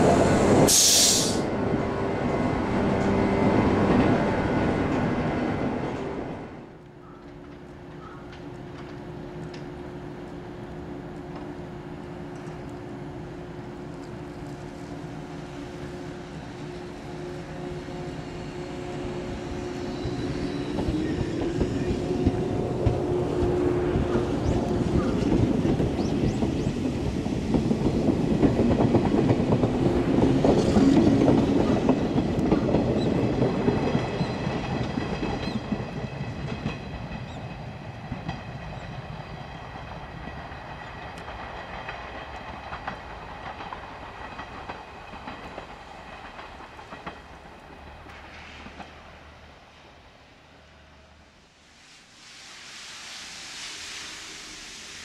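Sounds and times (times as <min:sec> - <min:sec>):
train wheels clattering over rail joints: 0:20.1 - 0:49.0.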